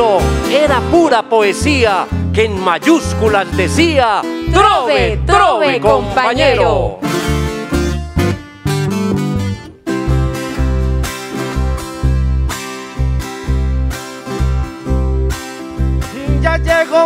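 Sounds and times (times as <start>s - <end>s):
electric bass notes: 0.0s - 17.0s.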